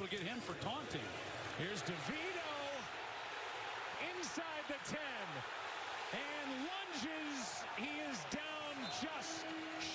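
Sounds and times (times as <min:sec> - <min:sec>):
announcer commentating: 0:00.0 - 0:02.9, 0:03.9 - 0:09.9
stadium crowd noise: 0:00.0 - 0:09.9.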